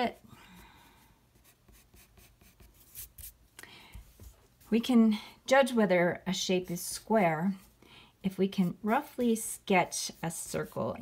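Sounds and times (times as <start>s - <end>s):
pencil scratching on paper: 1.3s - 3.4s.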